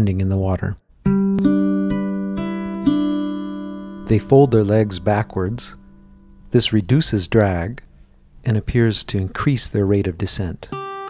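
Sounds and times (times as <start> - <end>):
plucked guitar notes ringing: 1.0 - 8.0, 10.7 - 11.0.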